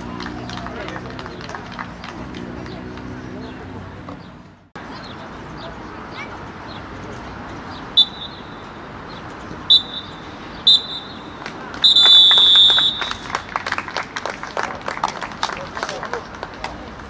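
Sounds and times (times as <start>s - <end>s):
scattered clapping: 0.0s - 4.2s, 11.3s - 17.0s
referee's whistle blasts: 8.0s - 8.7s, 9.7s - 13.5s.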